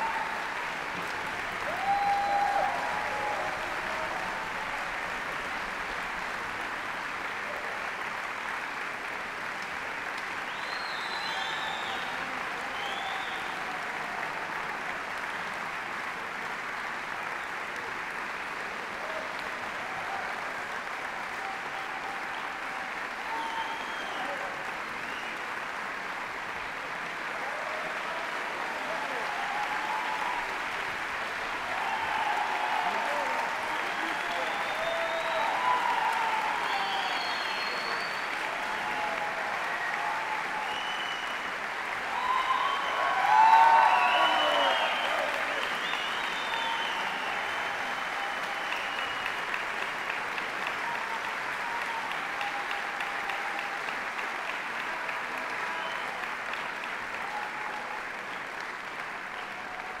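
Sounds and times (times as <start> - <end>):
audience shouting and cheering: 0.0 - 5.9, 19.0 - 24.6, 27.3 - 58.4
audience applauding: 0.0 - 60.0.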